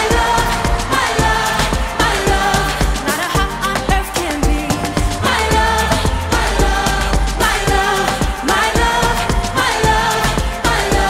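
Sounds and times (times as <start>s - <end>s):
deep bass and steady beat: 0.0s - 11.0s
woman singing: 0.0s - 11.0s.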